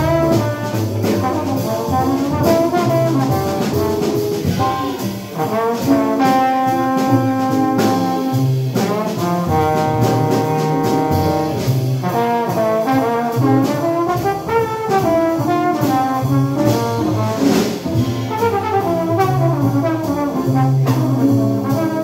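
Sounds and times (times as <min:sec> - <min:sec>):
drums with cymbal strikes: 0:00.0 - 0:22.0
piano: 0:00.0 - 0:22.0
trombone solo: 0:00.0 - 0:22.0
upright bass: 0:00.0 - 0:22.0.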